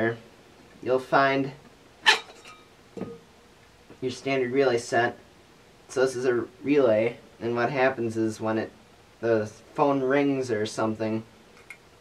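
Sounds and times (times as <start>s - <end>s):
metal cover scraping: 2.0s - 3.2s.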